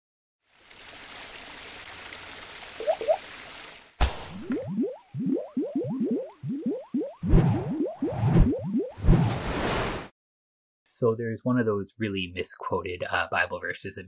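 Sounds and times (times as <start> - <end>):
rising bloops and splats: 2.7 - 3.3, 4.0 - 9.4.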